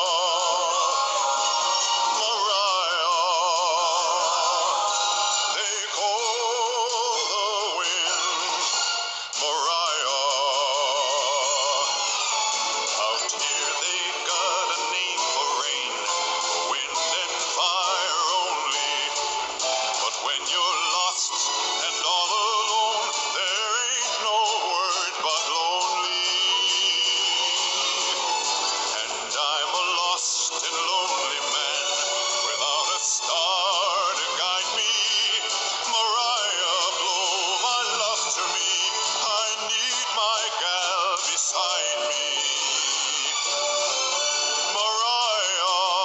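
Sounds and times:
instrumental accompaniment: 0.0 - 46.0
man singing with vibrato: 0.0 - 46.0.

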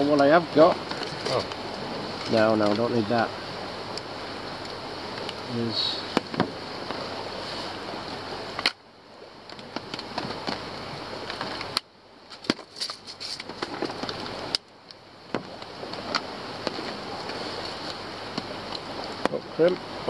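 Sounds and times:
steady outdoor hiss: 0.0 - 20.0.

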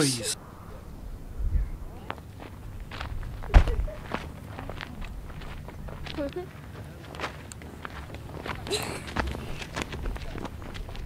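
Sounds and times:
footsteps on dirt: 2.1 - 11.0.

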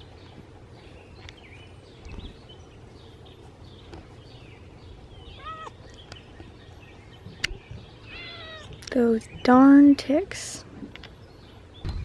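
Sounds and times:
cat meowing: 5.4 - 5.8, 8.1 - 8.8.

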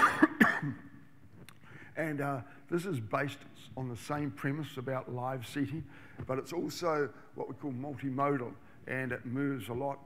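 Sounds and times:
man coughing: 0.0 - 0.9.

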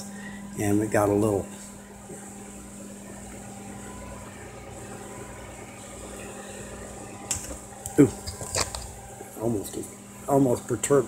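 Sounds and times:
turntable motor hum: 0.0 - 11.0.

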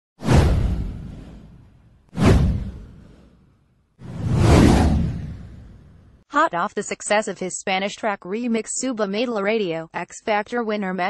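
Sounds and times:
whoosh sound effects: 0.2 - 6.1.

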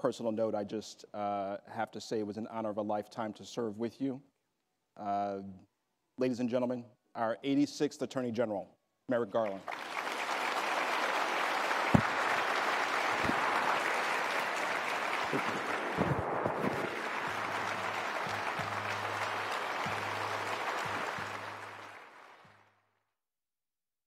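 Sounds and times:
audience applauding: 9.5 - 22.7
low thumps: 15.3 - 19.1.

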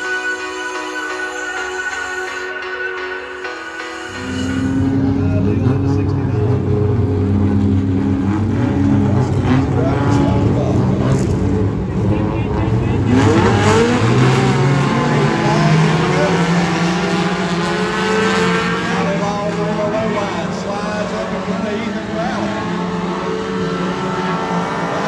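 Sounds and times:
race car engines passing: 4.1 - 25.0.

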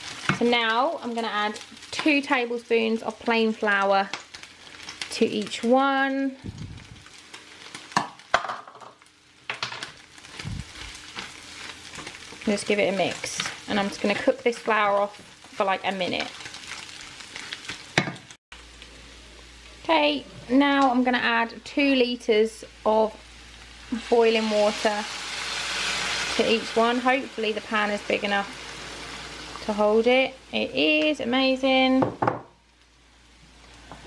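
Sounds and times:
food sizzling in pans: 0.0 - 34.0
stock hissing in a pan: 23.1 - 29.9.

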